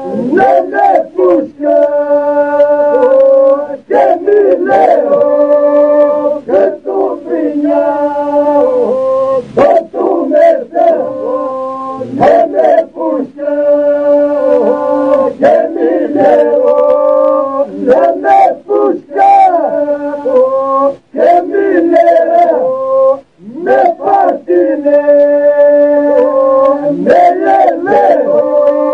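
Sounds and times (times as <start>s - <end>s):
men's group singing polyphony: 0.0s - 28.9s
vocal drone: 0.0s - 28.9s.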